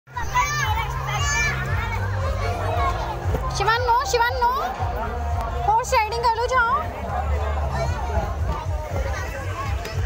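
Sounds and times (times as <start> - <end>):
children shouting: 0.1 - 5.3.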